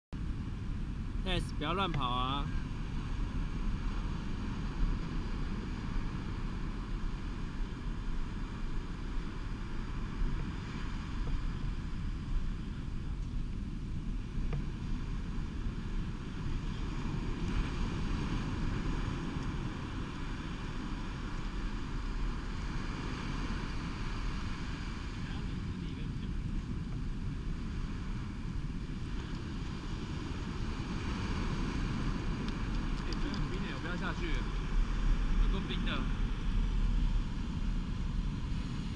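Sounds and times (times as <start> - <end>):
wind rumble on microphone: 0.1 - 38.9
ocean surf washing up: 0.2 - 38.9.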